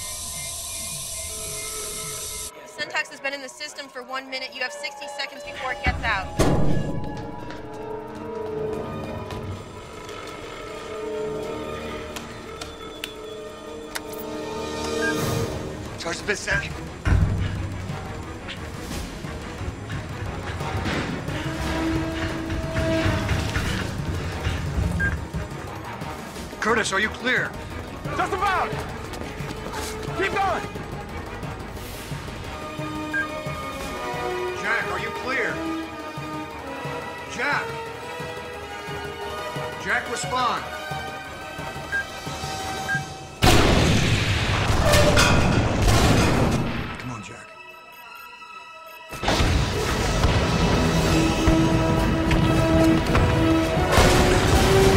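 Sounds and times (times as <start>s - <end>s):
tense orchestral music: 0.0s - 54.9s
countdown timer beeps: 16.4s - 16.9s, 24.9s - 25.3s, 33.0s - 33.6s, 41.6s - 43.4s, 47.4s - 49.2s.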